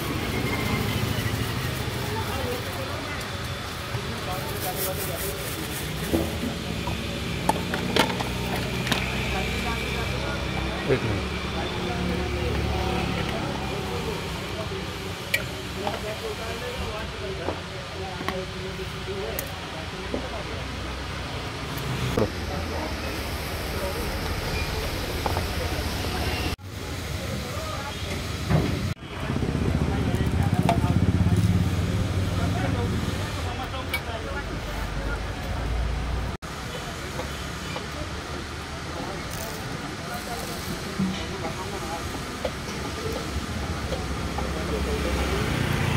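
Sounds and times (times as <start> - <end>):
background street voices: 0.0 - 45.9.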